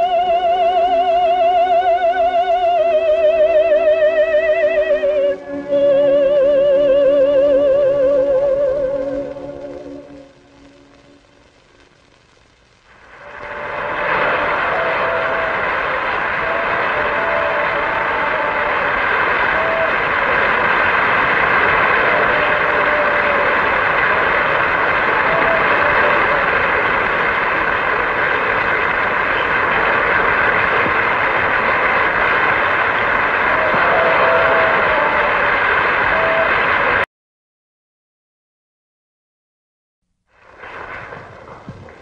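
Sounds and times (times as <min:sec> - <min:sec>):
audience applauding: 0:00.0 - 0:12.3, 0:12.9 - 0:37.1, 0:40.4 - 0:42.0
operatic singing with orchestra: 0:00.2 - 0:10.3.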